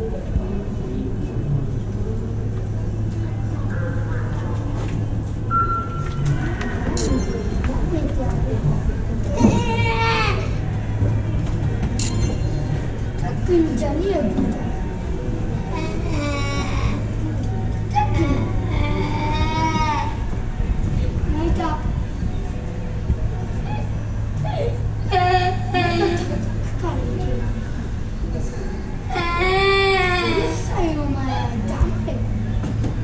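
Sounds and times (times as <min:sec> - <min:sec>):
crowd chattering: 0:00.0 - 0:33.0
steady low hum: 0:00.0 - 0:33.0
voices in reverberant hall: 0:00.0 - 0:33.0
electronic start beep: 0:05.5 - 0:06.3.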